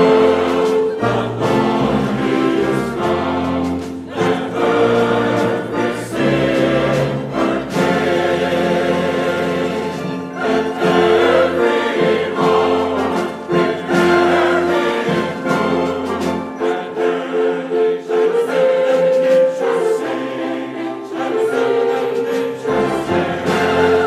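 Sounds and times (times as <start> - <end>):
choir singing: 0.0 - 24.0
symphony orchestra: 0.0 - 24.0.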